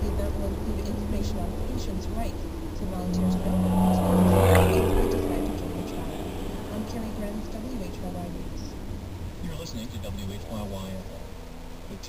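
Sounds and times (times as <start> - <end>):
car road and engine noise: 0.0 - 12.0
truck passing: 0.0 - 12.0.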